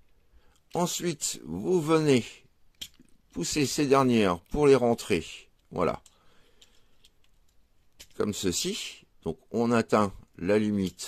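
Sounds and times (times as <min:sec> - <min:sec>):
faint toy clicks: 0:05.4 - 0:08.2.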